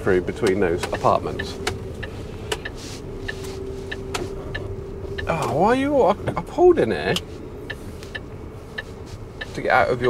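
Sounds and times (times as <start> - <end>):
truck diesel engine humming: 0.0 - 10.0.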